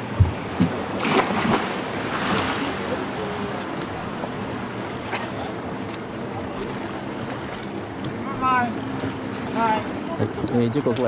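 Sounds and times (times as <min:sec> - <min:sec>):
boat engine running: 0:00.0 - 0:11.0
water noise: 0:00.0 - 0:11.0
wind: 0:00.0 - 0:11.0.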